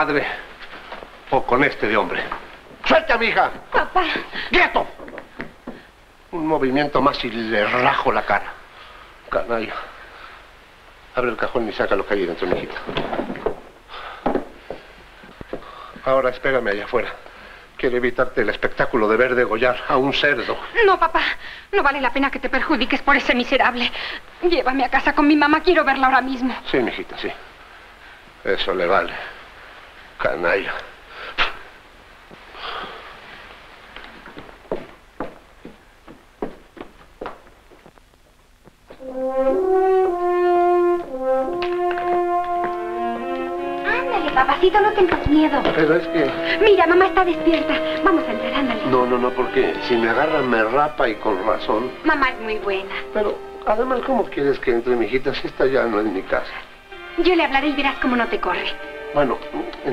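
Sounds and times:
faint taps: 5.0s - 5.9s, 12.5s - 15.7s, 33.9s - 39.0s
orchestral film music: 39.0s - 59.9s.

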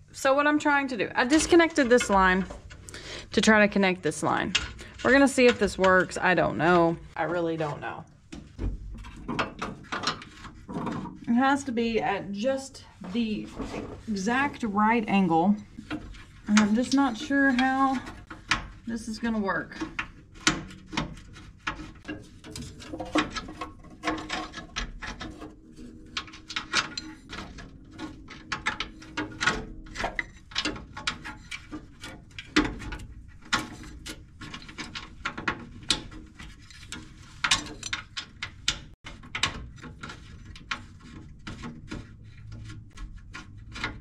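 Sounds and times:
metal line clicking and scraping: 0.4s - 44.0s.

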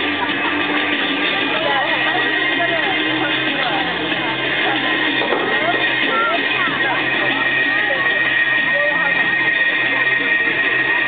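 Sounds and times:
music over loudspeaker: 0.0s - 11.0s
spectators chatting: 0.0s - 11.0s.

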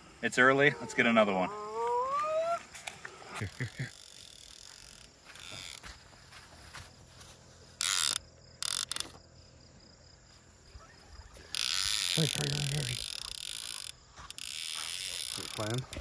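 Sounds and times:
fishing reel ratchet clicking: 2.8s - 5.8s, 7.8s - 9.2s, 11.4s - 16.0s.

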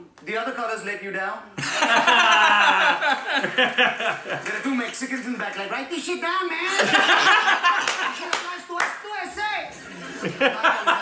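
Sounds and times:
men laughing hard: 1.6s - 4.5s, 6.7s - 8.3s, 9.8s - 11.0s
hands clapping: 4.2s - 5.7s, 7.7s - 9.1s.

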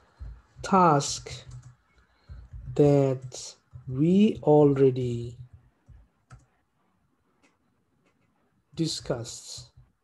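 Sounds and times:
keyboard clicks: 0.1s - 6.6s.

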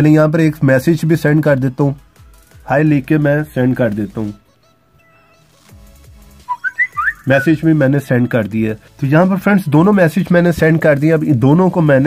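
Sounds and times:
faint background music: 0.0s - 12.0s
phone alert rising chirps: 6.5s - 7.5s.

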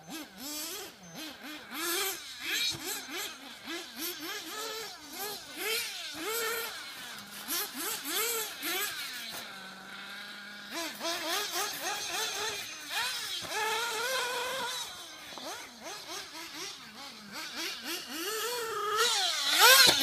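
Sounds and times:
small buggy engine revving: 0.0s - 20.0s.

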